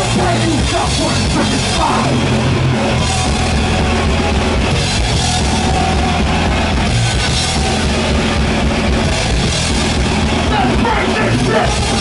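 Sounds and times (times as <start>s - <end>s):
fast kick-drum beats: 0.0s - 12.0s
thrash metal band playing: 0.0s - 12.0s.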